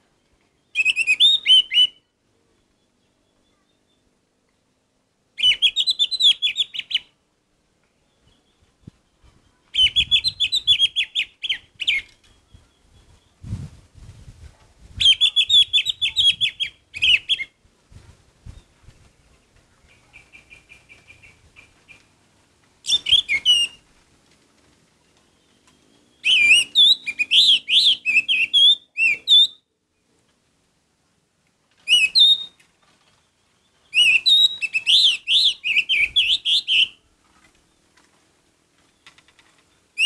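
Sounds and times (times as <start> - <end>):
bird whistling song: 0.6 - 4.0, 5.4 - 7.2, 9.7 - 13.5, 15.0 - 17.6, 19.8 - 22.0, 22.8 - 23.8, 25.3 - 29.7, 31.8 - 32.7, 33.4 - 37.0.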